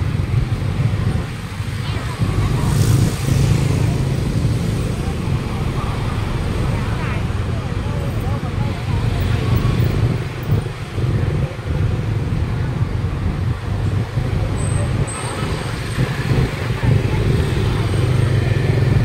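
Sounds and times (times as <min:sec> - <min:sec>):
indistinct chatter: 0:00.0 - 0:19.0
traffic rumble: 0:00.0 - 0:19.0.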